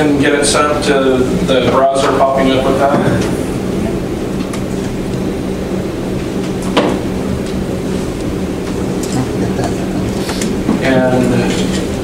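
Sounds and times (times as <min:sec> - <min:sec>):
low room hum: 0:00.0 - 0:12.0
faint murmuring voices: 0:08.8 - 0:11.9.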